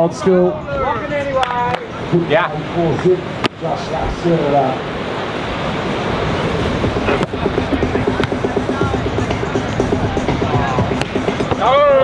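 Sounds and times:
wind rumbling on microphone: 0.0s - 12.0s
music from pa with fast beat: 6.7s - 12.0s.

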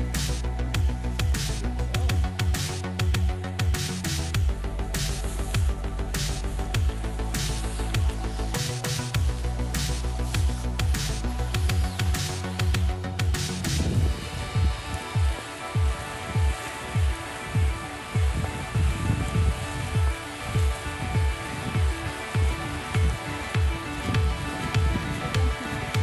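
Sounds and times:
sustained synth chords: 0.0s - 26.0s
deep kick drum: 11.6s - 26.0s.

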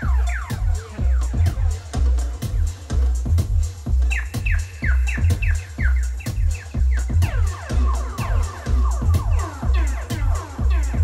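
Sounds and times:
pulsing bass: 0.0s - 11.0s.

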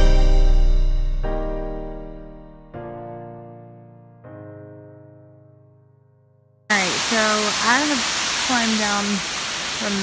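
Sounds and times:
piano note: 0.0s - 6.5s
person talking: 6.7s - 10.0s
waterfall rushing: 6.7s - 10.0s.

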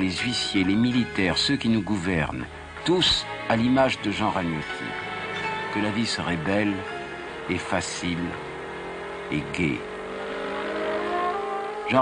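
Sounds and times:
car engine accelerating hard: 4.7s - 12.0s.

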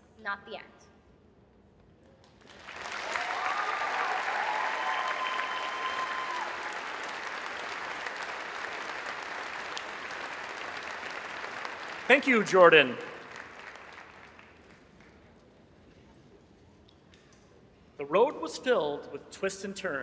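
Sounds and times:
arena crowd applauding: 2.3s - 15.3s.

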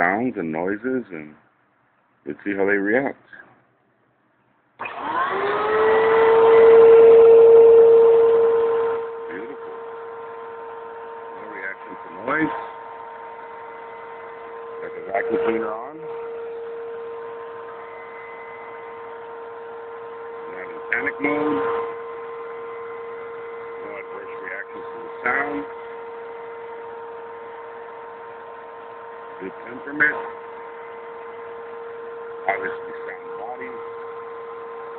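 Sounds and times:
vacuum cleaner running: 4.8s - 34.9s.

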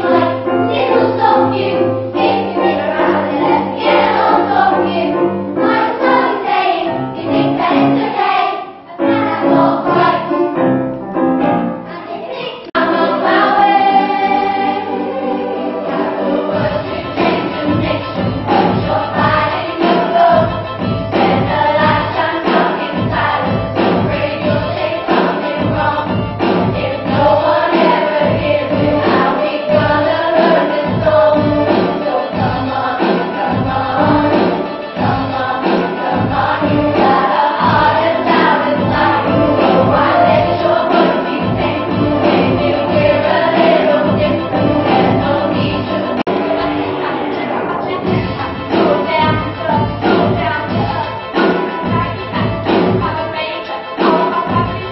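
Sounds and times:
children's choir singing: 0.0s - 54.9s
backing track with steady beat: 15.8s - 54.9s.

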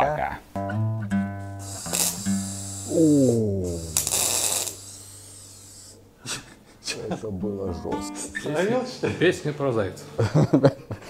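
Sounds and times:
acoustic guitar: 0.5s - 5.9s, 7.2s - 10.5s
person singing: 2.9s - 4.1s, 7.6s - 8.5s.

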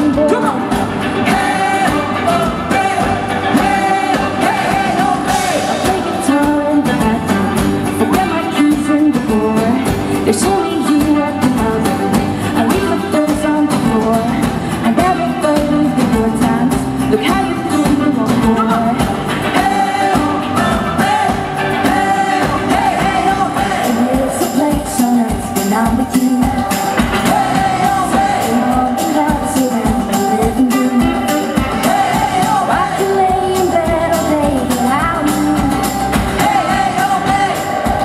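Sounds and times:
acoustic guitar: 0.0s - 38.0s
drums with steady beat: 0.0s - 38.0s
electric guitar: 0.0s - 38.0s
man singing: 0.0s - 38.0s
woman singing: 0.0s - 38.0s.

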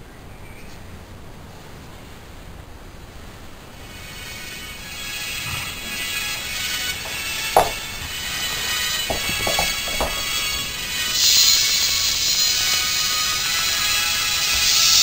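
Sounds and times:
light knocks: 7.0s - 7.9s, 9.1s - 10.4s.

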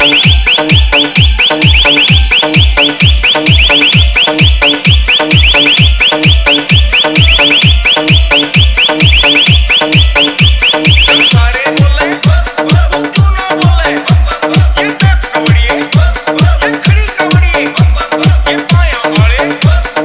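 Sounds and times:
heavy kick drum booms: 0.0s - 11.4s
high synth chirp rising: 0.0s - 11.4s.

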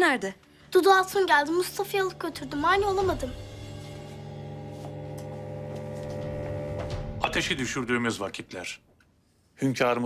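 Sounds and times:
low sustained chord: 3.3s - 7.5s.

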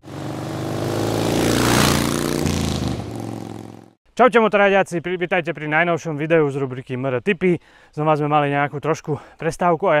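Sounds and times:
motorcycle engine passing by: 0.0s - 4.0s.

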